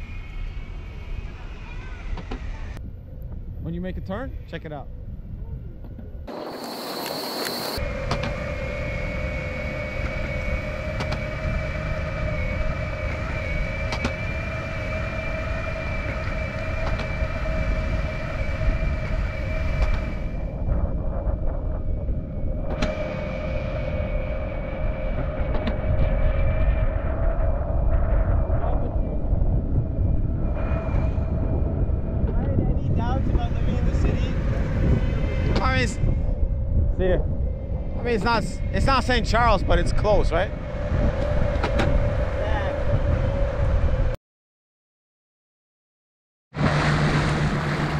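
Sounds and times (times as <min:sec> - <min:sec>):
wheels rolling on concrete: 0:06.3 - 0:08.4
electric motors whining: 0:06.3 - 0:20.6
voices: 0:38.0 - 0:40.6.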